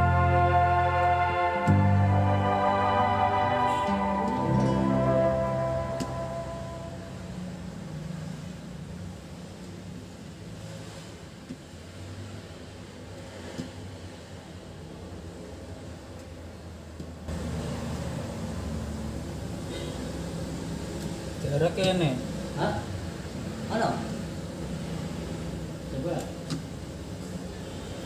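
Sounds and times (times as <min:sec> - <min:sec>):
background music: 0:00.0 - 0:07.6.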